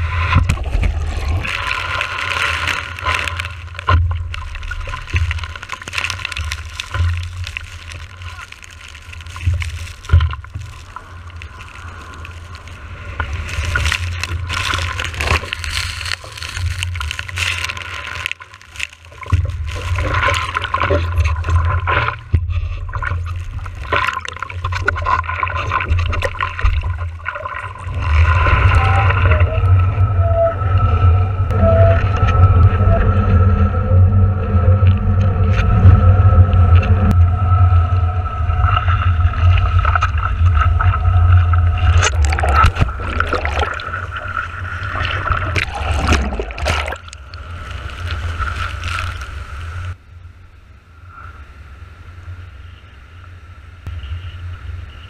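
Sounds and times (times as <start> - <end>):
water rushing and splashing: 0.0 - 32.8, 34.8 - 50.0.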